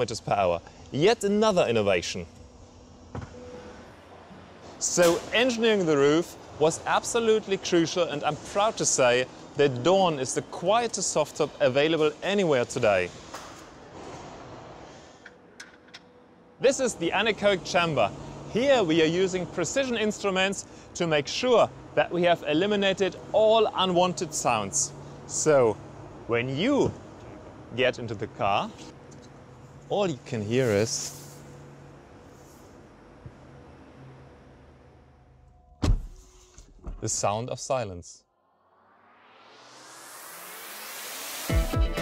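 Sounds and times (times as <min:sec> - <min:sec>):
loud thud: 0:35.8 - 0:36.2.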